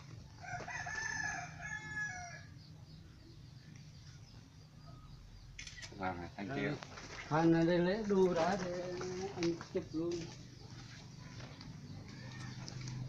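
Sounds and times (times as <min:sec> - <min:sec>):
rooster crowing: 0:00.4 - 0:02.5.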